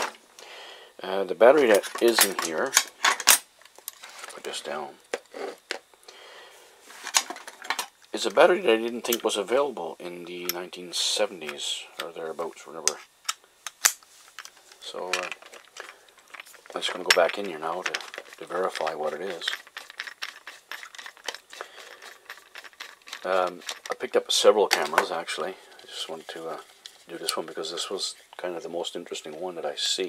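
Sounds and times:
screwdriver clicking and scraping: 17.9 - 23.9.

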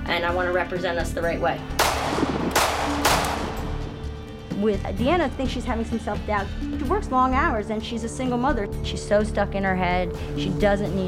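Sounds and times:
background music: 0.0 - 11.0
pistol shots: 1.8 - 4.0.

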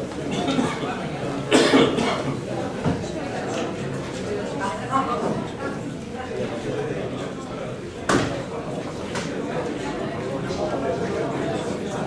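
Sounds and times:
murmur of voices: 0.0 - 12.0
person coughing loudly: 1.5 - 2.3.

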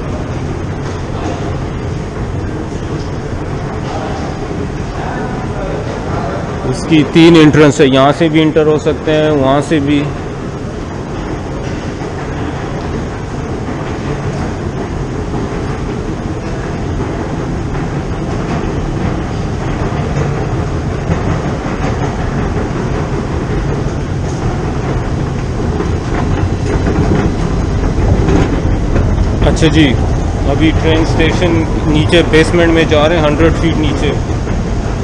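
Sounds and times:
rumbling clattering machinery: 0.0 - 35.0.

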